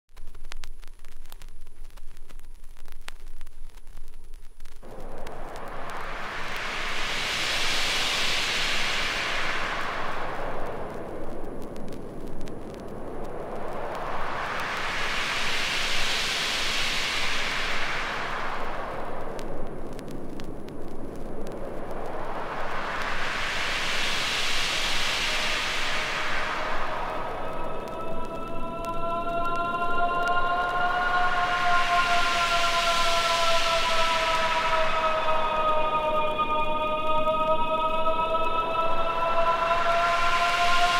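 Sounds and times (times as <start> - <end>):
noise sweep: 0.2 - 40.9
whooshing filtered noise: 0.6 - 40.9
siren-like trance synth wail: 4.8 - 40.9.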